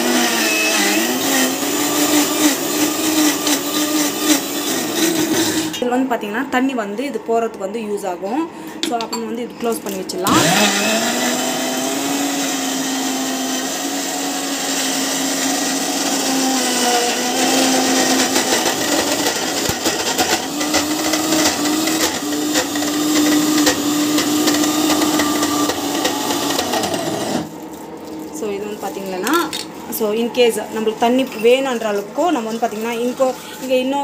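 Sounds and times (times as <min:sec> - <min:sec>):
mixer grinder whirring: 0:00.0 - 0:05.8, 0:10.1 - 0:34.0.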